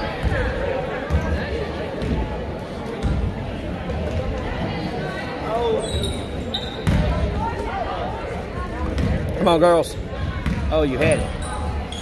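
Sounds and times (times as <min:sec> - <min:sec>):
spectators' voices: 0:00.0 - 0:12.0
sneaker squeaks: 0:05.5 - 0:07.2, 0:10.4 - 0:12.0.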